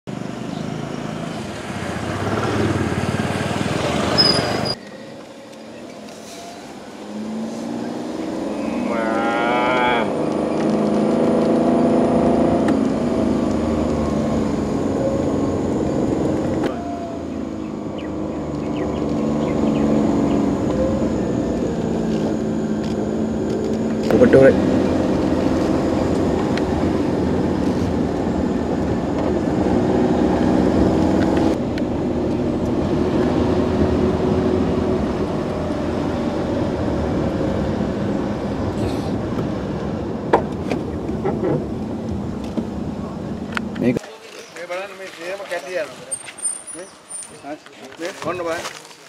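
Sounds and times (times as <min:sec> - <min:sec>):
vehicle engine running: 0:05.6 - 0:44.0.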